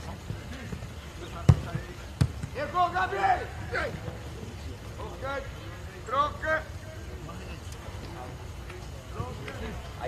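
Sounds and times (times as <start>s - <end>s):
football kick thud: 1.4s - 2.6s.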